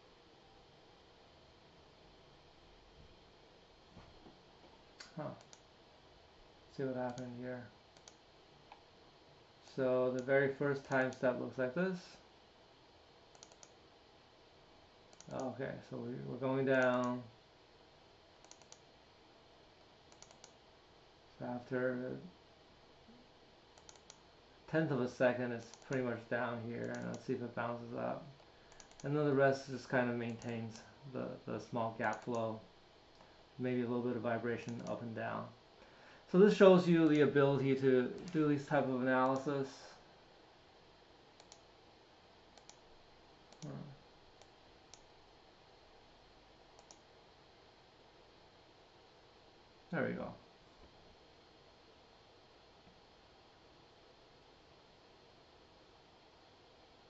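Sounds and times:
computer mouse clicks: 5.0 - 5.7, 7.1 - 7.3, 7.9 - 8.8, 13.3 - 13.8, 15.1 - 15.5, 16.8 - 17.2, 18.4 - 18.9, 20.1 - 20.6, 23.8 - 24.2, 25.6 - 26.0, 26.8 - 27.3, 28.4 - 29.1, 30.2 - 30.8, 32.1 - 32.4, 33.1 - 33.3, 34.7 - 35.0, 38.2 - 38.4, 41.4 - 41.7, 42.6 - 42.9, 43.5 - 45.1, 46.8 - 47.1
faint computer mouse clicks: 8.0 - 8.8, 13.3 - 13.8, 18.4 - 18.9, 20.1 - 20.6, 23.8 - 24.2, 25.6 - 26.0, 28.7 - 29.1, 34.7 - 35.0, 41.4 - 41.6, 42.6 - 42.8, 43.5 - 43.7, 46.8 - 47.0.

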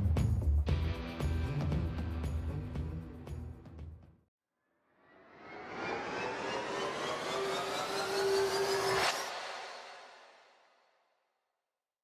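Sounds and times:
rising whoosh: 5.0 - 10.6.

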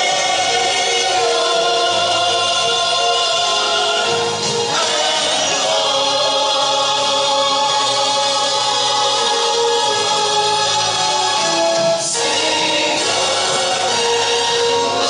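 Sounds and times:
congregation singing a worship song: 0.0 - 15.0.

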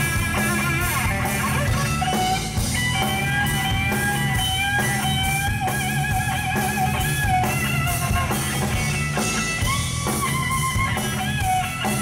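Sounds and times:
bass guitar: 0.0 - 12.0
drums: 0.0 - 12.0.

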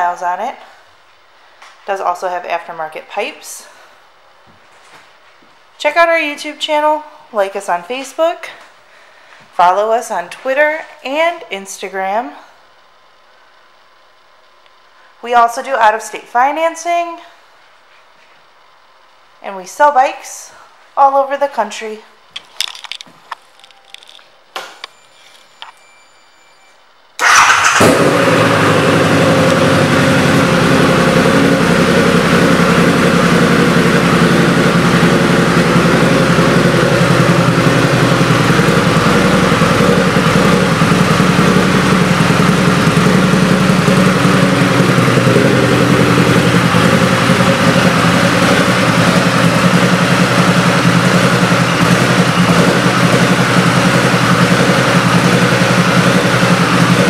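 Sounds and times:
motorcycle engine starting and idling: 27.2 - 57.0.

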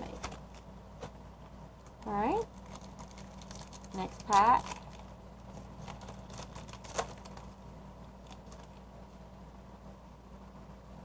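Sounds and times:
cards rustling: 0.0 - 1.2, 1.8 - 7.6, 8.2 - 8.9
low steady hum: 0.0 - 11.0
foil wrapper tearing and crinkling: 2.5 - 7.6, 8.2 - 8.8.

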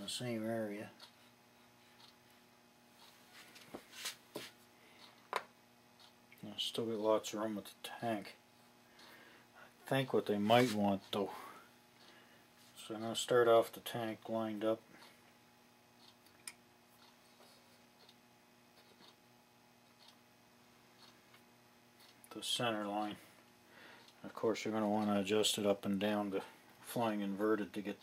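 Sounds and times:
faint steady hum: 0.0 - 28.0
faint ticks and click: 1.9 - 2.4.

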